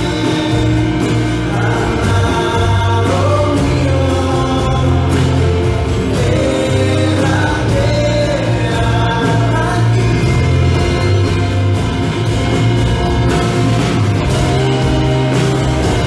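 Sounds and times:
voices singing long notes: 0.0 - 16.0
worship band playing: 0.0 - 16.0.

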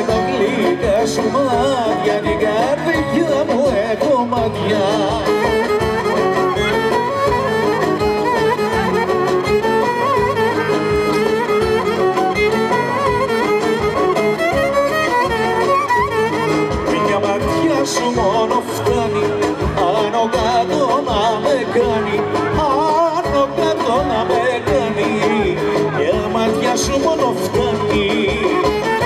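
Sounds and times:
folk band playing dance tune: 0.0 - 29.0
violin melody: 0.0 - 29.0.

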